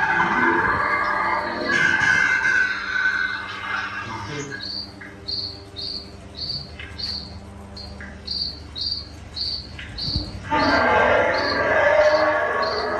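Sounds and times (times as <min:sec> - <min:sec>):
loud creature roar: 0:00.0 - 0:04.2, 0:10.5 - 0:12.9
crickets chirping: 0:00.0 - 0:12.9.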